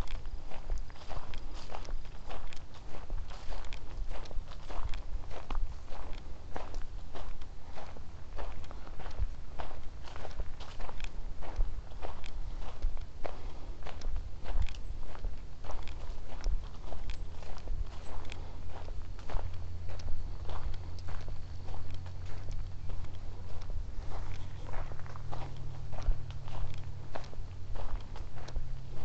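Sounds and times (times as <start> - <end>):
footsteps on leafy dirt trail: 0.0 - 29.0
low steady rumble: 0.0 - 29.0.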